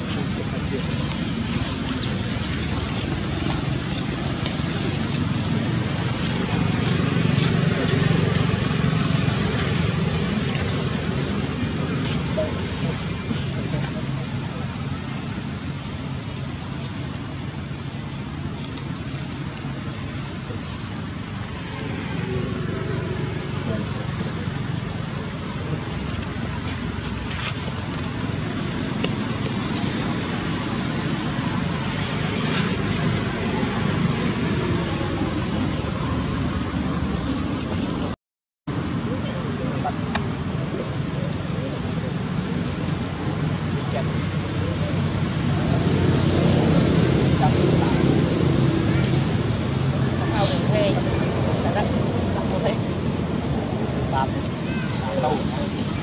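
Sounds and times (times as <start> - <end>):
engine hum: 0.0 - 56.0
indistinct voices: 0.0 - 56.0
motor traffic: 0.0 - 56.0.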